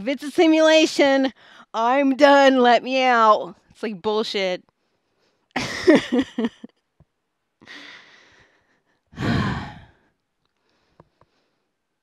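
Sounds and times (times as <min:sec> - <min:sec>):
woman laughing: 0:05.6 - 0:06.7
woman breathing in: 0:07.6 - 0:11.8
woman sighing heavily: 0:09.2 - 0:10.0.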